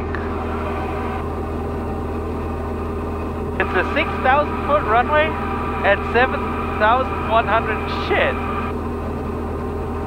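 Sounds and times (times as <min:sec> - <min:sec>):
light aircraft engine droning: 0:00.0 - 0:10.0.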